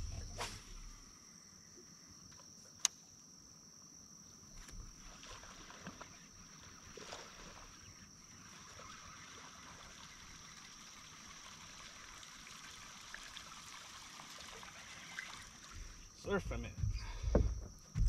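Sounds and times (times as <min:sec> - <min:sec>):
water splashing and lapping: 0:04.6 - 0:16.2.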